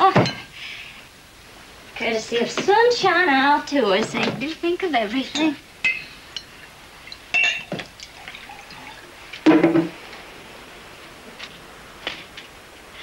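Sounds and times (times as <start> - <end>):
glassware clinking: 5.4 - 9.9.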